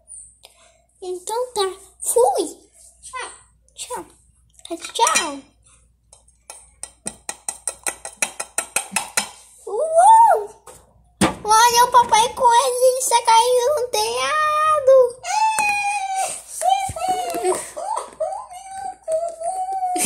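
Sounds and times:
child crying and wailing: 14.2 - 20.0.

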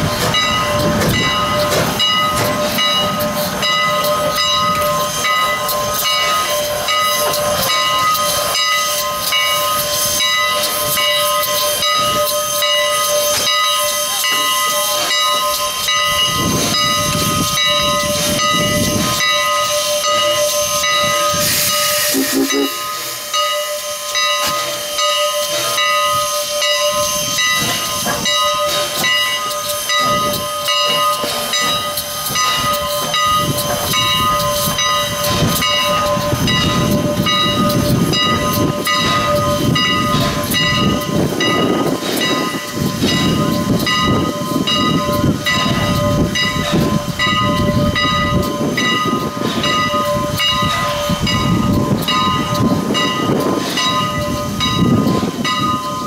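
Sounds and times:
steam locomotive hissing steam: 0.0 - 56.0
wind rumbling on microphone: 35.3 - 56.0.

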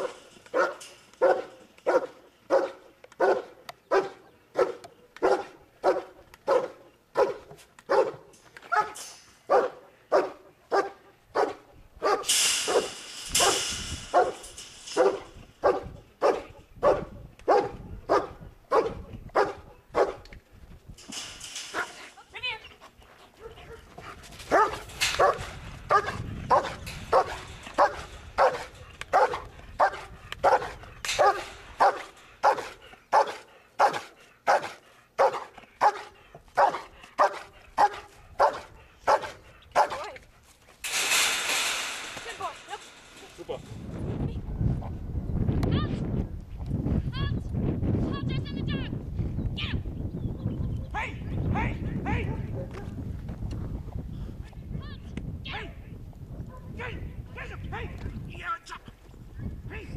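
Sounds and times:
dog barking: 0.0 - 14.4, 15.0 - 20.2, 23.4 - 23.9, 24.5 - 40.1, 56.5 - 56.7.

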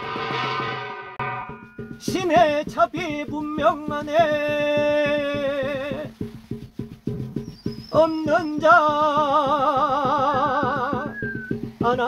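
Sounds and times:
rapid drum beat: 0.0 - 12.0
faint high ringing: 0.3 - 2.1.

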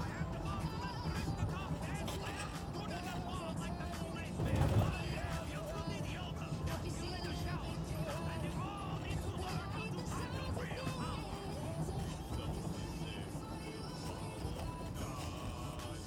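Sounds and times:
man rapping over a beat: 0.0 - 16.0.

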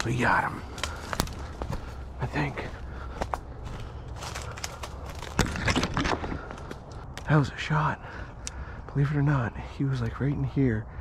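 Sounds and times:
twigs cracking and rustling: 0.0 - 7.4
footsteps crunching through snow: 0.7 - 5.6.

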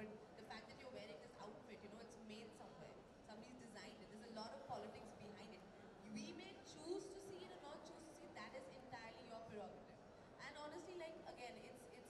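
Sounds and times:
woman talking into a microphone: 0.0 - 12.0.

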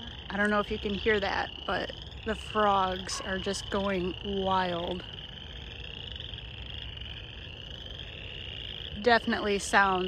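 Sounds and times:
chorus of frogs calling: 0.0 - 10.0.

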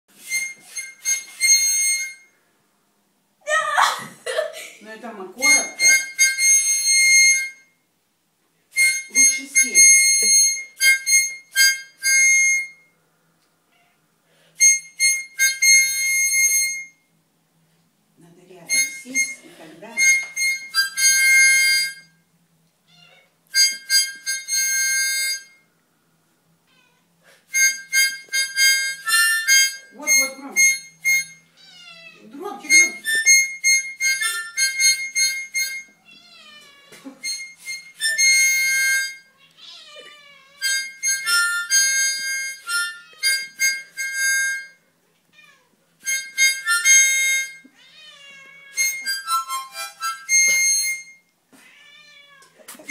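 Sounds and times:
harmonica blasts: 0.1 - 2.4, 5.4 - 7.8, 8.7 - 13.0, 14.5 - 17.1, 18.7 - 22.2, 23.5 - 25.7, 27.4 - 31.6, 32.3 - 36.0, 37.0 - 39.4, 40.6 - 44.9, 46.0 - 47.8, 48.7 - 51.3
cat meowing: 22.9 - 23.3, 26.6 - 27.2, 31.5 - 32.3, 36.0 - 37.3, 39.3 - 40.9, 45.3 - 45.8, 47.6 - 49.1, 51.6 - 52.7.

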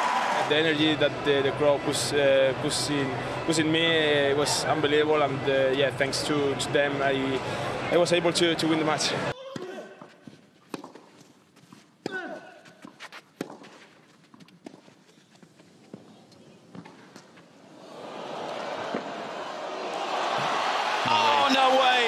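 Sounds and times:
crowd noise: 0.0 - 9.4, 17.2 - 22.0
racket hitting tennis ball: 10.7 - 14.9.

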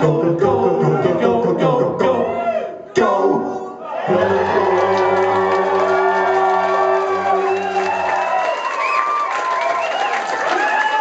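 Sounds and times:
male a cappella group singing: 0.0 - 7.6
audience cheering and whooping: 3.8 - 11.0.

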